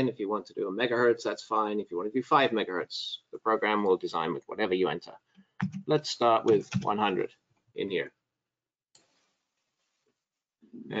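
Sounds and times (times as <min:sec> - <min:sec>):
man speaking: 0:00.0 - 0:08.2, 0:10.8 - 0:11.0.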